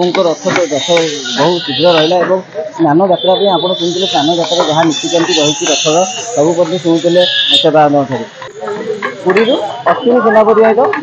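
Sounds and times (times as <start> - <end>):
man speaking into a microphone: 0.0 - 11.0.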